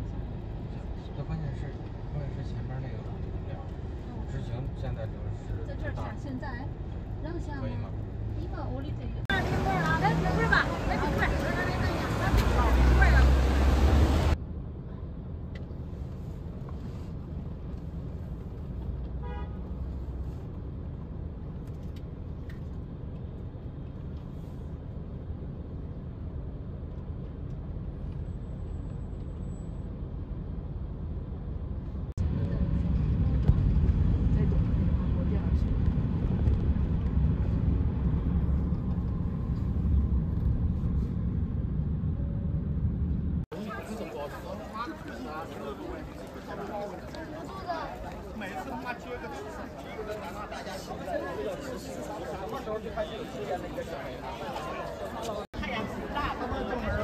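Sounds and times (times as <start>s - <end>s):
people's voices: 0.0s - 14.4s, 43.5s - 57.0s
bus engine rumbling past: 0.0s - 21.4s, 22.9s - 57.0s
steady traffic noise: 0.0s - 57.0s.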